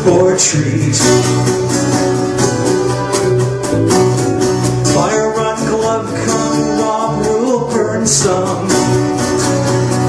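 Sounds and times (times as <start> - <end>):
acoustic guitar strumming: 0.0 - 10.0
low bass line: 0.6 - 7.1.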